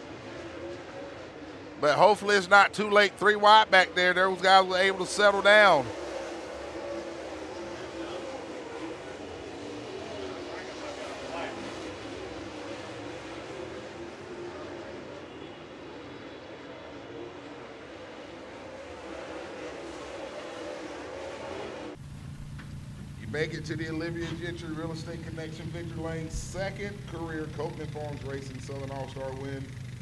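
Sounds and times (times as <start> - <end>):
crowd noise: 0.0 - 30.0
race car engines circling track: 0.0 - 30.0
quiet outdoor background: 21.9 - 30.0.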